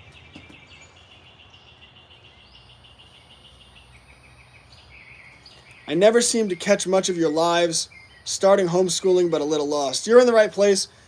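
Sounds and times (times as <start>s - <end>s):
high pulsing wildlife chirr: 0.0s - 11.0s.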